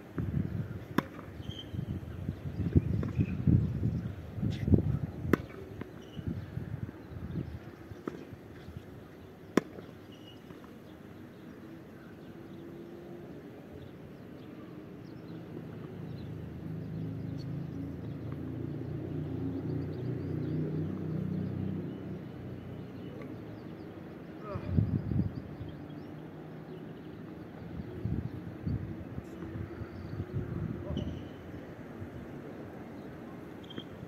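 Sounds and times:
racket hitting tennis ball: 0:00.9 - 0:01.3, 0:05.3 - 0:06.0, 0:09.5 - 0:10.7.

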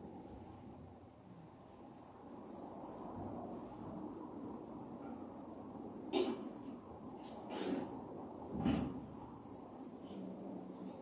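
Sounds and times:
rustling of vessels and linens: 0:02.5 - 0:11.0.

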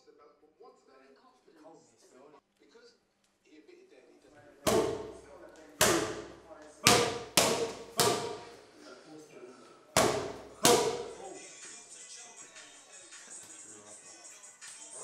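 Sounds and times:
boxing gloves smacking punch pads: 0:04.7 - 0:08.6, 0:10.0 - 0:11.3.

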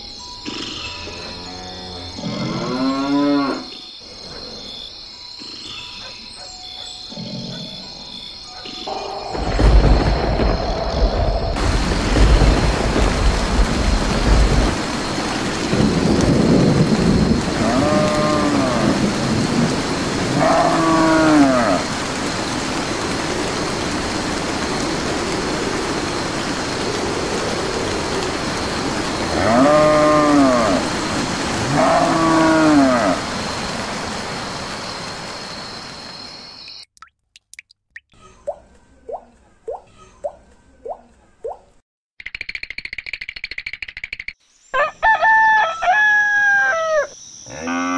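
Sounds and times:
cow mooing: 0:01.0 - 0:03.7, 0:20.3 - 0:21.8, 0:29.3 - 0:30.8, 0:47.5 - 0:47.9
heavy rain: 0:09.0 - 0:36.6
thunder rumble: 0:09.2 - 0:35.8.

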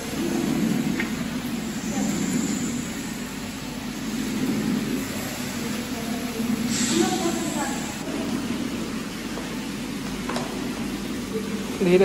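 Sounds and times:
low rushing hall noise: 0:00.0 - 0:12.0.

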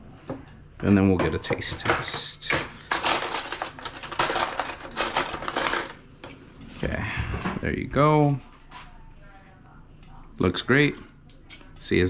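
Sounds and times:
cutlery clinking in drawer tray: 0:00.8 - 0:06.0.

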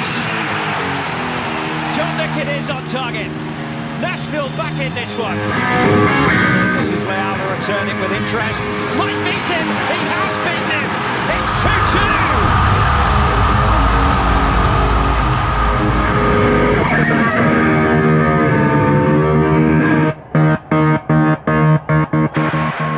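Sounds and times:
electric guitar rock music: 0:00.0 - 0:22.9
stadium crowd roaring: 0:00.0 - 0:22.9.

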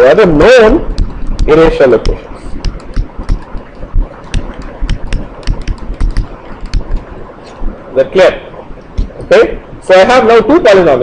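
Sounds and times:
pen tapping on board: 0:01.0 - 0:03.7, 0:04.3 - 0:07.0.

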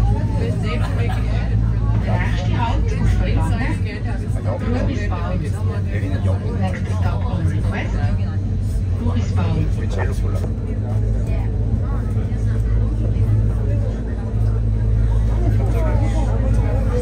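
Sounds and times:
people chatting: 0:00.0 - 0:17.0.

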